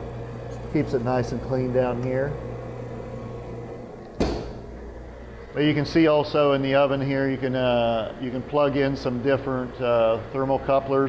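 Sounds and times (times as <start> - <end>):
cabinet door latching shut: 4.2 - 4.6.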